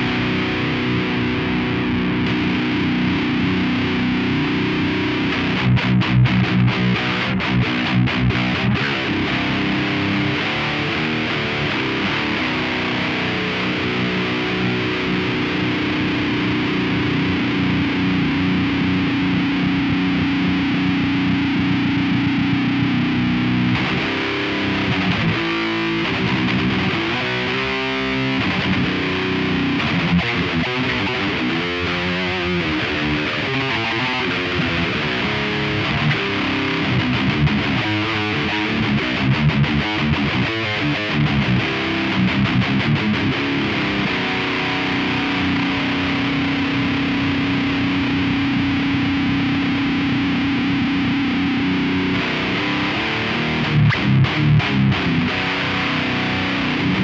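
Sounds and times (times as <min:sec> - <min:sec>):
distorted electric guitar riffs: 0:00.0 - 0:57.0.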